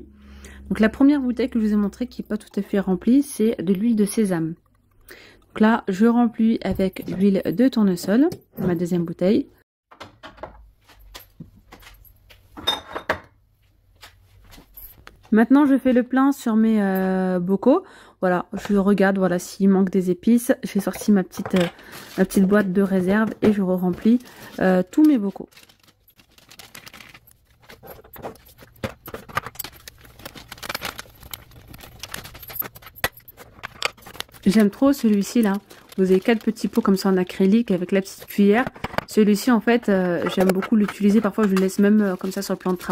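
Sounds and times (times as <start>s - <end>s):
plastic bag crinkling: 21.8s - 38.4s, 39.4s - 42.9s.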